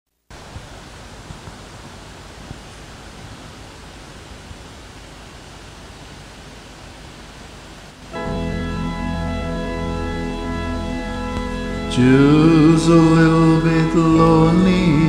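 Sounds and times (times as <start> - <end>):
microphone and room hiss: 0.2 - 15.0.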